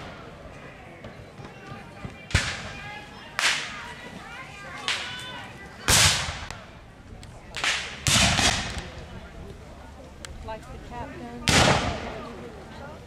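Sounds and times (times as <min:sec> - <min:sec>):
muskets firing: 0:07.6 - 0:08.9, 0:11.5 - 0:12.2.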